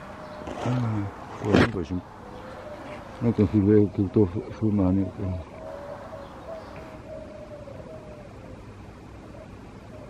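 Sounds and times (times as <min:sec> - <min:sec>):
faint steady tone: 0:02.0 - 0:10.0
man's low voice: 0:03.2 - 0:05.5.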